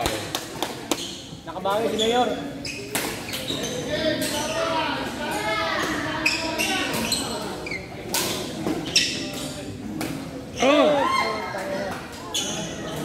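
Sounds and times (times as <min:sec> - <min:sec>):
echoing background chatter: 0:00.0 - 0:13.0.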